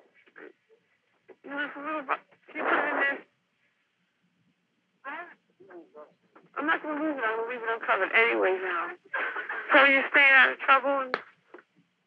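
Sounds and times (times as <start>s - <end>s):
wordless vocal sounds over telephone: 5.1s - 11.1s.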